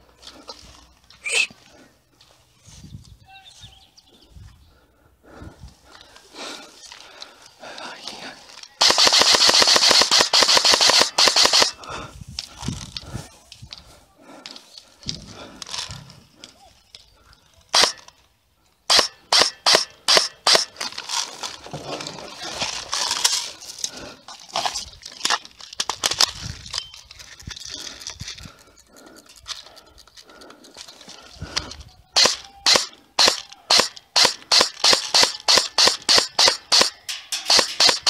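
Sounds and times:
airsoft rifle full-auto firing: 0:08.8 - 0:11.8, 0:17.8 - 0:18.0, 0:18.9 - 0:20.7, 0:32.2 - 0:38.0
airsoft rifle semi-auto shots: 0:08.8 - 0:11.8, 0:17.7 - 0:18.0, 0:18.9 - 0:20.7, 0:32.2 - 0:38.0.

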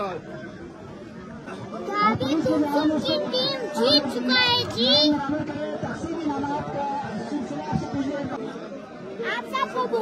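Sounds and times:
boy speaking loudly: 0:01.8 - 0:05.2, 0:09.2 - 0:10.0.

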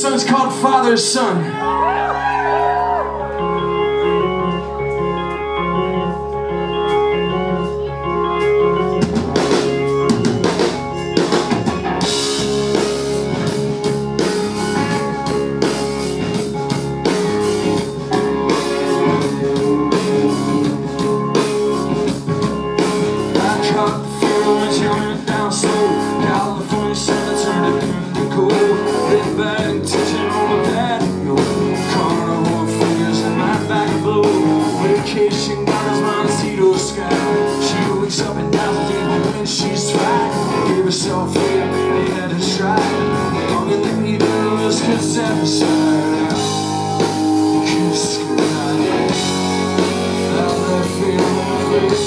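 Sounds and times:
guitar chords: 0:00.0 - 0:52.0
live rock band playing: 0:00.0 - 0:52.0
drum kit and cymbals: 0:09.0 - 0:52.0.

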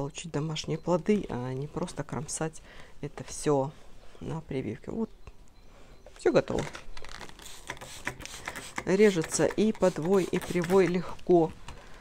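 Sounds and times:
plastic rustling: 0:06.5 - 0:12.0
spray bottle clicks and spritzes: 0:07.2 - 0:11.0.

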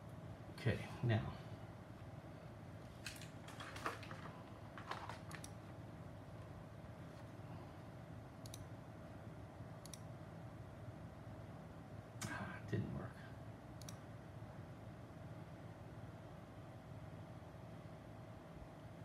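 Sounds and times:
electronics hum: 0:00.0 - 0:19.0.

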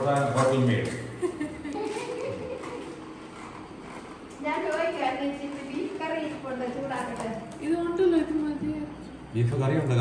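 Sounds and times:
woman speaking: 0:04.4 - 0:09.0.

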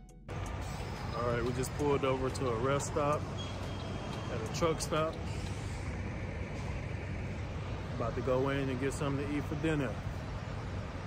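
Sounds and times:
diesel engines idling: 0:00.3 - 0:11.0.

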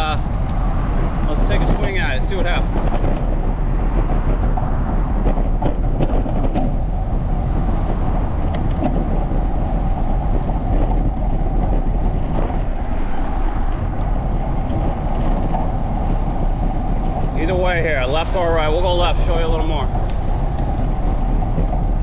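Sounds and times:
bicycle tyres rolling on pavement: 0:00.0 - 0:22.0
wind on microphone: 0:00.0 - 0:22.0.

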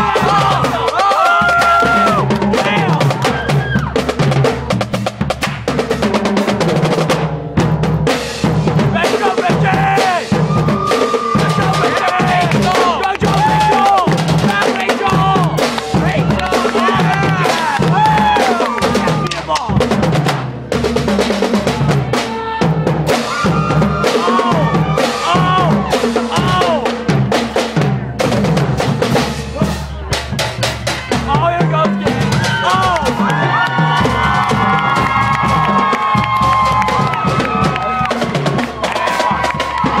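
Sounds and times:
marching drumline playing: 0:00.0 - 0:40.0.

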